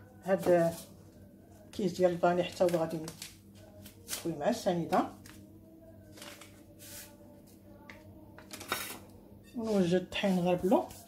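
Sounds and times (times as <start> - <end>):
paper sachet rustling: 6.1 - 6.7.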